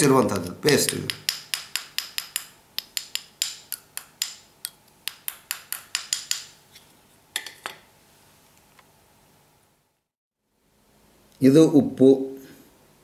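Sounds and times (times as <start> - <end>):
plastic spoon clicking on plate: 0.9 - 6.6.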